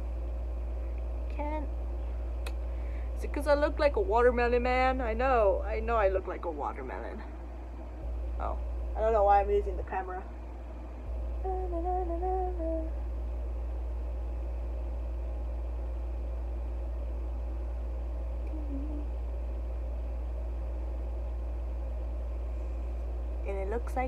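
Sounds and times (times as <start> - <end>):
steady low hum: 0.0 - 24.0
woman humming: 11.4 - 13.0, 18.4 - 19.2.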